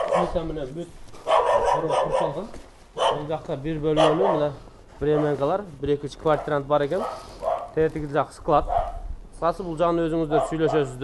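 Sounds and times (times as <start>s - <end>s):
dog barking: 0.0s - 0.5s, 1.2s - 2.4s, 3.0s - 3.3s, 3.9s - 5.4s, 6.4s - 7.8s, 8.7s - 9.0s, 10.3s - 11.0s.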